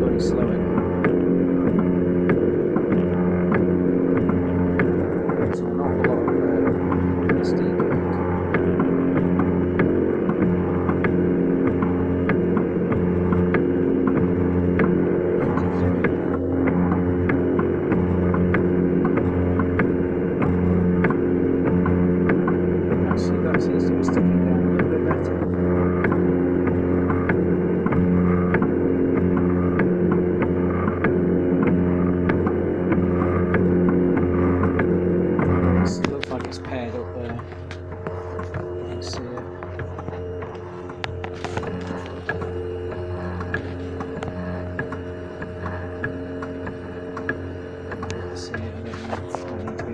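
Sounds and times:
light ticking: 0.0 - 49.9
steady hum: 0.0 - 49.9
stepper motors whining: 0.0 - 49.9.

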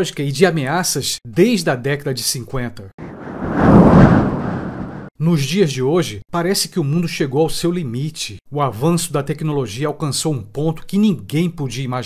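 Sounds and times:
deep rumbling: 3.0 - 5.1.

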